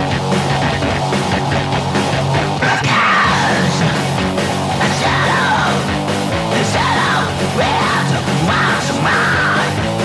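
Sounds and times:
hardcore punk band playing: 0.0s - 10.0s
screamed vocals: 2.6s - 4.2s, 4.8s - 5.9s, 6.6s - 9.7s.

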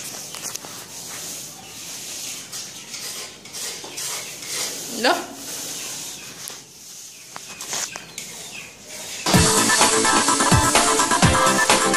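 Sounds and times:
paint roller swishing on wall: 0.0s - 11.9s.

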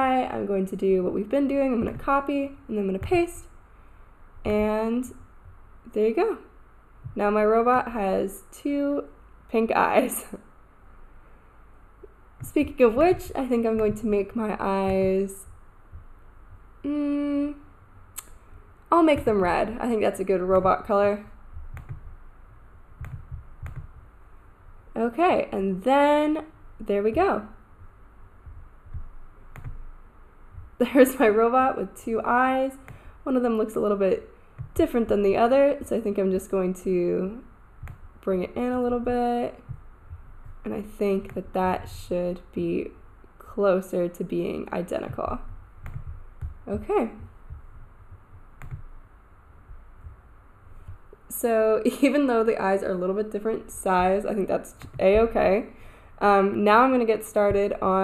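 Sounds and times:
faint low room noise: 0.0s - 58.0s
faint handling bumps: 12.0s - 16.7s, 43.4s - 51.4s, 52.0s - 58.0s.

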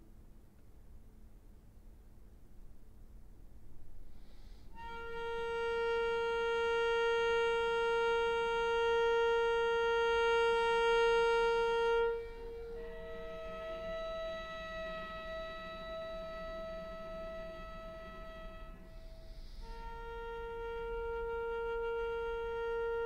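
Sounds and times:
cello playing long bowed notes: 4.7s - 23.0s.

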